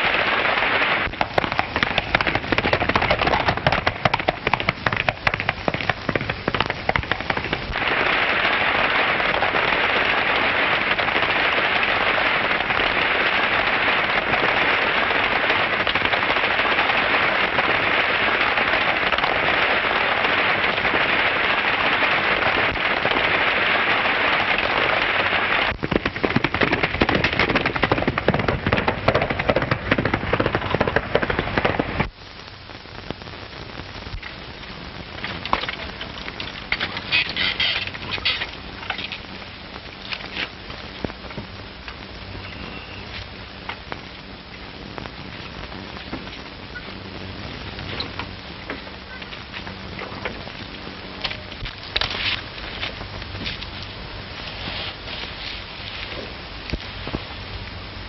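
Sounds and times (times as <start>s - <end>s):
galloping hooves clattering: 1.0s - 32.1s.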